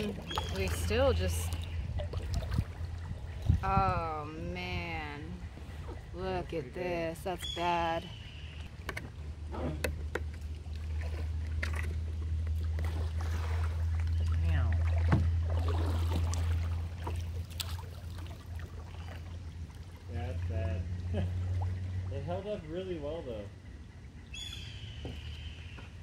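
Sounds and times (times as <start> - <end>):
paddle strokes in water: 0.0 - 3.7, 5.4 - 6.4, 8.5 - 20.4
steady low rumble: 0.0 - 26.0
paddle knocking plastic hull: 8.8 - 13.0, 14.9 - 16.4.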